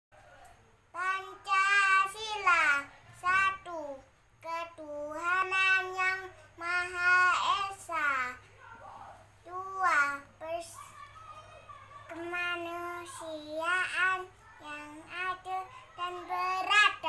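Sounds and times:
boy chanting in sing-song voice: 0.9 - 8.5, 9.4 - 17.0.

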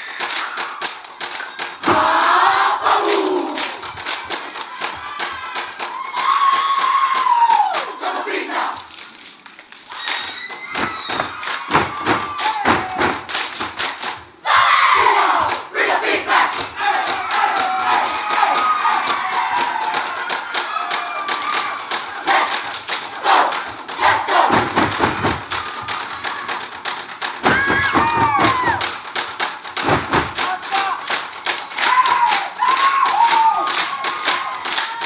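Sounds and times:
rhythmic hand slaps: 0.0 - 35.0
group shouting in unison: 1.8 - 3.8, 10.0 - 13.3, 14.4 - 26.7, 27.4 - 28.9, 31.8 - 35.0.

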